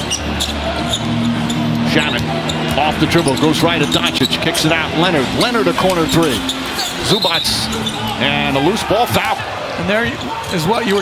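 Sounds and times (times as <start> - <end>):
low background music: 0.0 - 9.8.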